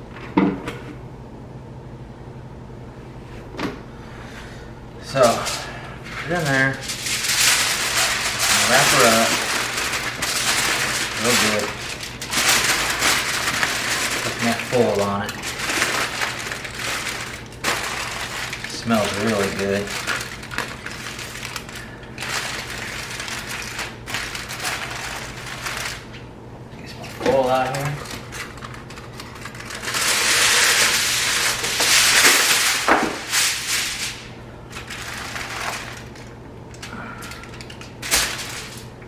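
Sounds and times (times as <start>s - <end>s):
aluminium foil crinkling: 5.0s - 39.0s.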